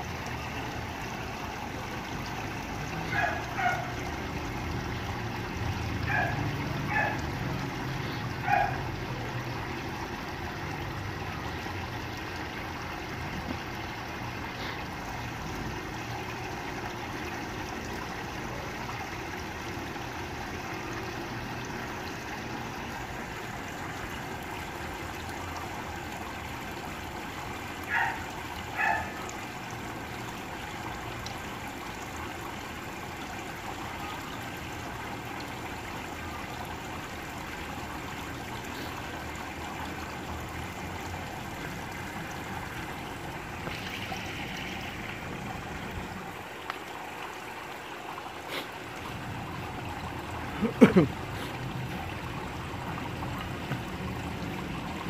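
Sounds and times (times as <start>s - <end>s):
water trickling in fish tank: 0.0s - 55.0s.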